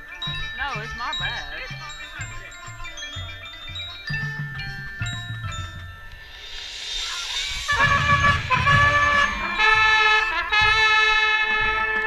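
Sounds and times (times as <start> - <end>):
low drums: 0.0 - 12.0
mallet keyboards ringing: 0.0 - 12.0
marching band sustained chords: 0.0 - 12.0
cymbal swell: 6.0 - 10.7.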